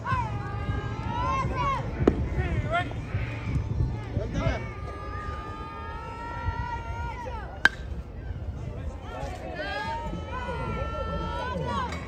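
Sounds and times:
metal bat striking ball: 7.6 - 7.9.

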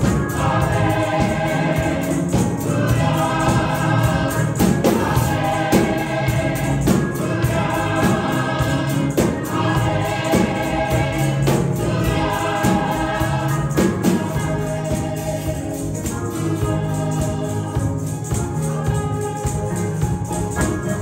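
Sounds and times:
choir singing with accompaniment: 0.0 - 21.0
percussion hits: 0.0 - 21.0.

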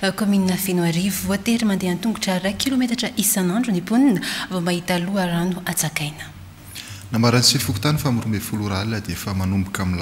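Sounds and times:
man speaking: 7.1 - 10.0.

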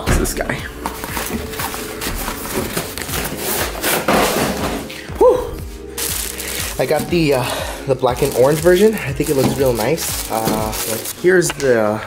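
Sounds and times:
cardboard rustling and scraping: 0.8 - 5.0, 8.1 - 11.7.

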